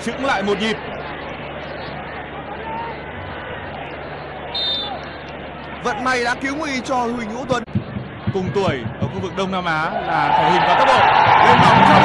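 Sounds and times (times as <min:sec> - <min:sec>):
stadium crowd hubbub: 0:00.0 - 0:12.0
short high-pitched whistle: 0:04.5 - 0:05.0.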